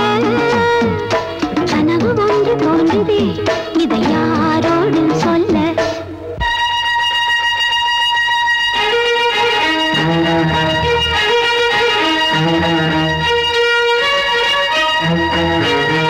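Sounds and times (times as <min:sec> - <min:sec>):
melody over bass line: 0:04.2 - 0:13.7
strings holding a high note: 0:06.3 - 0:16.0.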